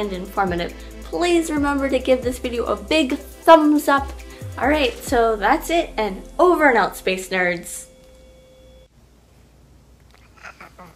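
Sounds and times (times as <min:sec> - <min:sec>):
faint pure tone: 0:07.4 - 0:08.9.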